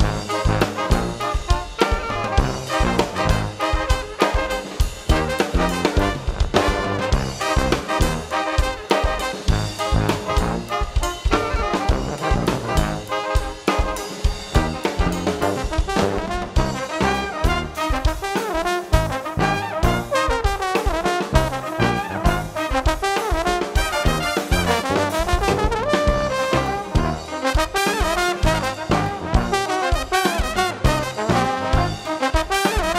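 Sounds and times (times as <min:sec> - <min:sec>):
bass: 0:00.0 - 0:32.9
brass band playing: 0:00.0 - 0:32.9
drum beat: 0:00.0 - 0:32.9.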